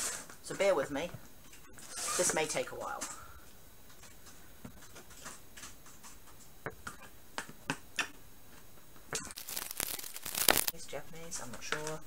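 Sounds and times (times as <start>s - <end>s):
cardboard crackling rustle: 9.4s - 10.7s.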